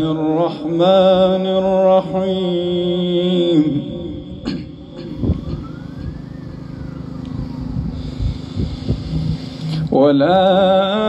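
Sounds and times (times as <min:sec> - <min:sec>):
low outdoor rumble: 0:00.0 - 0:11.0
distant siren wail: 0:04.0 - 0:09.9.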